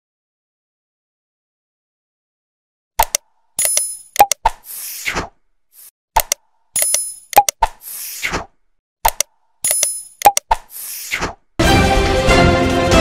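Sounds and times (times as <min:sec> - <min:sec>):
mouse clicks: 0:03.0 - 0:04.6, 0:06.2 - 0:08.4, 0:09.0 - 0:11.2.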